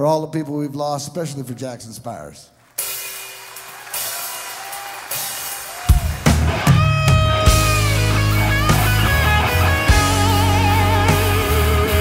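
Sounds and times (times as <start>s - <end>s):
live rock band playing: 2.8s - 12.0s
lead guitar bending notes: 6.3s - 12.0s.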